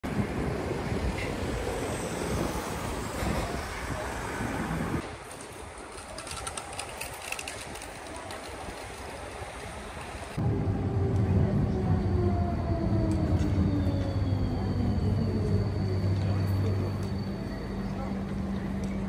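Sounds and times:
traffic rumble: 0:00.0 - 0:19.0.

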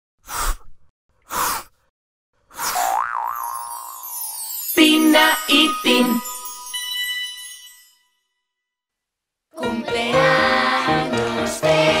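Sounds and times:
springy boing tone: 0:02.8 - 0:03.8
sparkly shimmer: 0:03.4 - 0:08.3.

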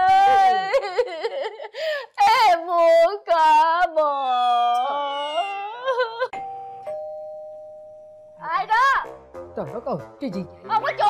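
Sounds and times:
woman mock-crying wail: 0:00.0 - 0:01.7
two-note doorbell chime: 0:06.4 - 0:08.4.

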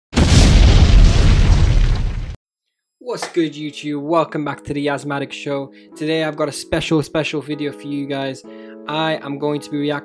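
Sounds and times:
deep rumbling explosion boom: 0:00.1 - 0:02.4.

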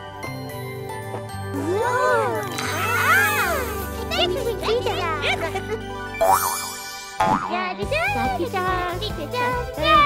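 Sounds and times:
cartoon background music: 0:00.4 - 0:10.0.

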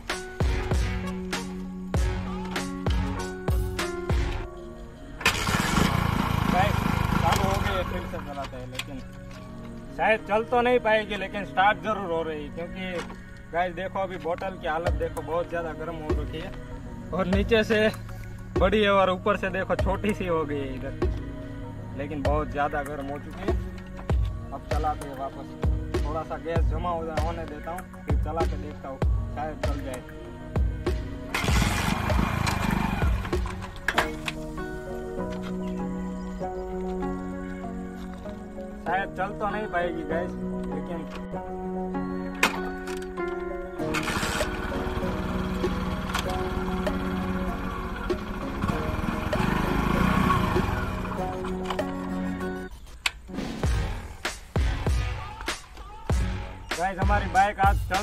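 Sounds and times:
background music with steady beat: 0:00.0 - 0:05.5, 0:06.5 - 0:58.0
motorcycle engine starting: 0:05.1 - 0:09.2, 0:31.2 - 0:35.1, 0:42.4 - 0:52.7.

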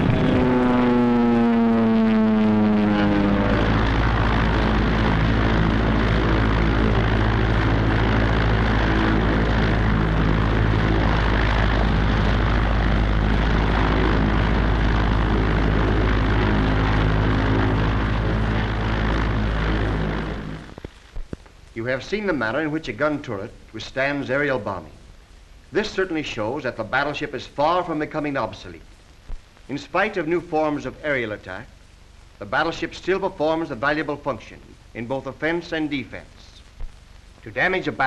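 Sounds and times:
propeller aircraft engines droning: 0:00.0 - 0:21.0.

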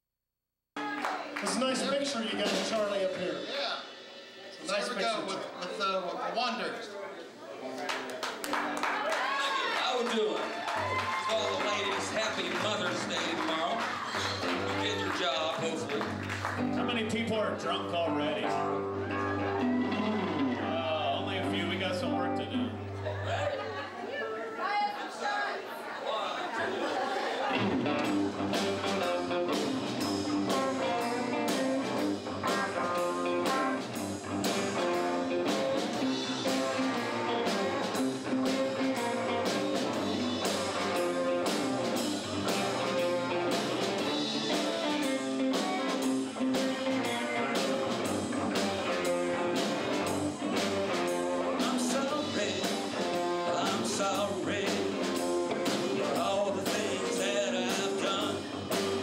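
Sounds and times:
drum kit beat: 0:00.8 - 0:05.2, 0:10.7 - 0:22.2, 0:27.5 - 0:59.0
electric guitars: 0:08.4 - 0:23.8, 0:27.5 - 0:59.0.

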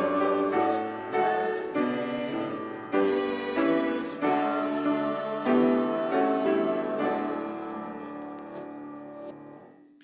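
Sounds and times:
congregation singing a hymn: 0:00.0 - 0:09.3
piano accompaniment: 0:00.0 - 0:10.0.

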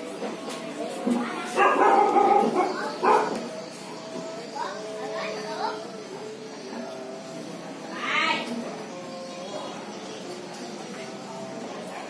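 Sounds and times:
murmur of voices: 0:00.0 - 0:12.0
dog barking: 0:01.6 - 0:03.4.

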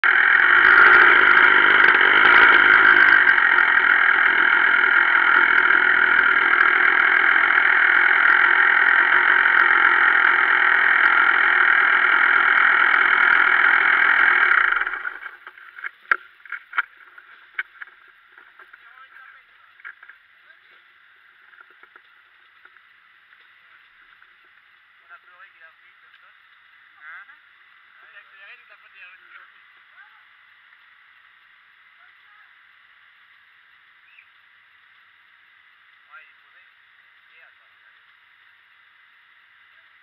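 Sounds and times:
muffled dirt bike engine running: 0:00.0 - 0:25.3
sharp clicks and knocks: 0:13.2 - 0:18.9.

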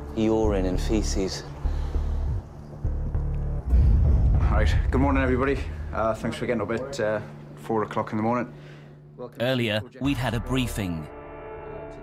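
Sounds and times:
deep bass background music: 0:00.0 - 0:08.1, 0:09.8 - 0:12.0.

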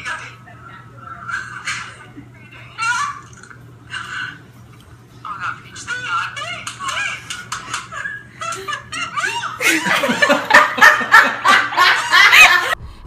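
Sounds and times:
women laughing: 0:07.0 - 0:12.8.

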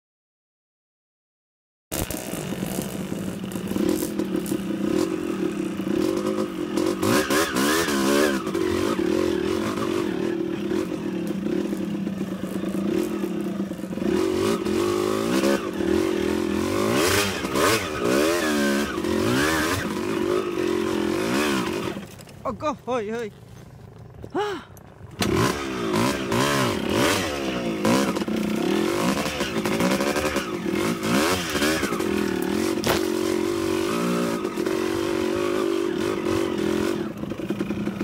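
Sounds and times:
dirt bike engines revving: 0:02.0 - 0:38.0.

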